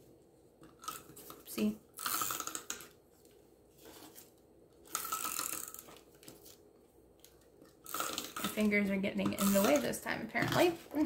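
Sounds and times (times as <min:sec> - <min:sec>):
paper and tape rustling: 0:03.2 - 0:10.0.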